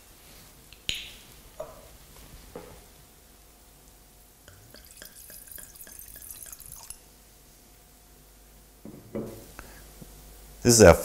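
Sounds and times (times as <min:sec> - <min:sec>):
wine pouring into glass: 0:04.5 - 0:07.0.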